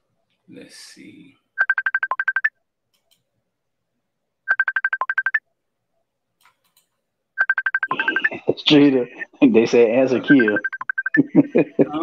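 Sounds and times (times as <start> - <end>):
ringtone rapid high beeps: 1.6 - 2.5, 4.5 - 5.4, 7.4 - 8.4, 10.3 - 11.3.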